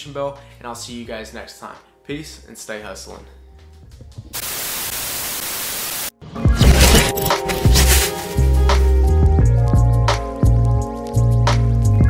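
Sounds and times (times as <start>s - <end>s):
television static hiss: 4.4s - 6.1s.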